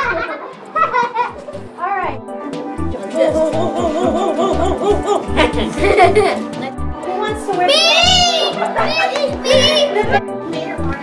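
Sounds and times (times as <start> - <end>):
children's voices and laughter: 0.0 - 1.8, 3.2 - 6.8, 7.6 - 10.8.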